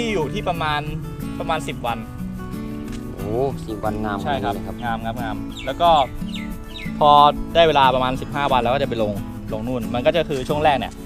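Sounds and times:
man talking: 0.0s - 2.1s, 3.1s - 6.1s, 7.0s - 11.0s
background music: 0.0s - 11.0s.

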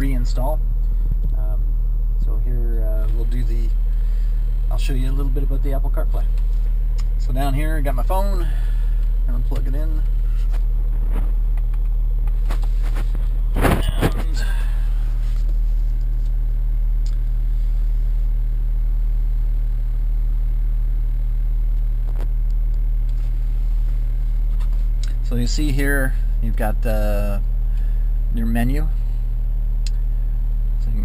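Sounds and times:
diesel engine idling: 0.0s - 31.0s.

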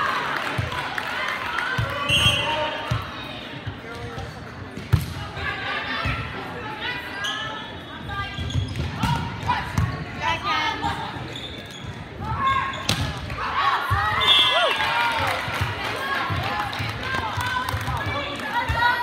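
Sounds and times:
players calling out and talking: 0.4s - 19.0s
volleyball thuds in echoing gym: 1.8s - 5.4s, 8.3s - 10.2s, 12.0s - 14.4s.

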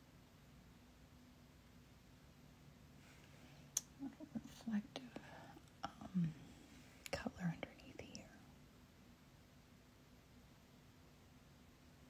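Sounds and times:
soft whispered muttering: 3.9s - 8.6s.

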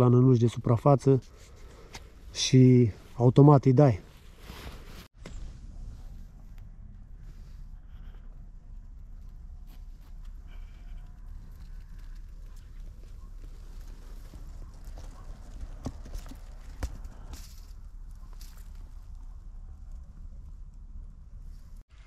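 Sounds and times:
knocks and clicks among dry reeds: 9.1s - 20.1s.

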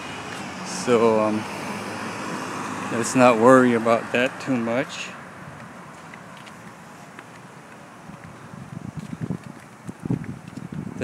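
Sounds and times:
distant traffic hiss: 0.0s - 8.9s
wind buffeting microphone: 5.3s - 11.0s.

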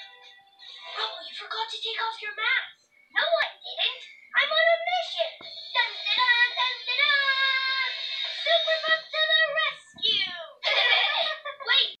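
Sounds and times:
high-pitched cartoon voices: 3.2s - 12.0s.

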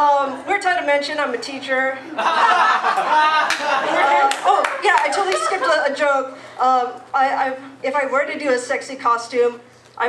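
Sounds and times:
voices: 0.0s - 9.6s
audience clapping: 2.9s - 5.5s.

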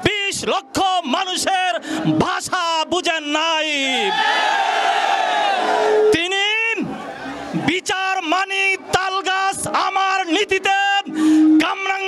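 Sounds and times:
man calling into a microphone: 0.0s - 4.1s, 6.1s - 12.0s.

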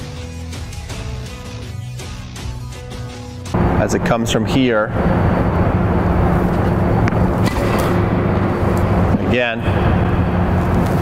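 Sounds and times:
low rumble with hum: 3.5s - 11.0s.

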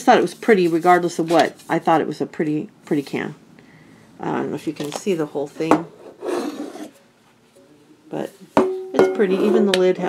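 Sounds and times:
metal tin rasping rub: 6.0s - 7.0s.

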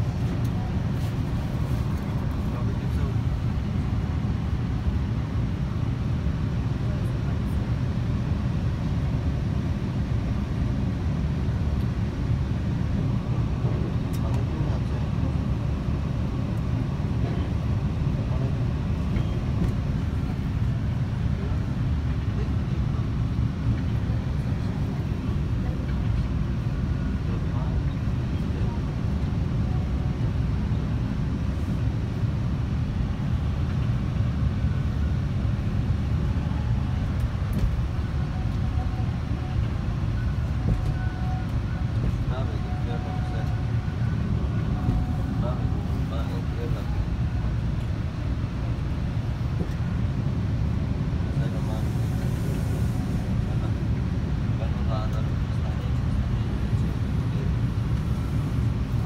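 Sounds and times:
faint passengers' voices: 0.0s - 59.0s
subway train rumble: 0.0s - 59.0s.

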